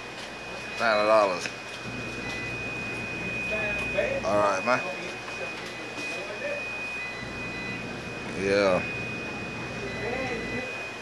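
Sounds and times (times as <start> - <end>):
high-pitched whine: 0.0 - 11.0
laundromat machines humming: 0.0 - 11.0.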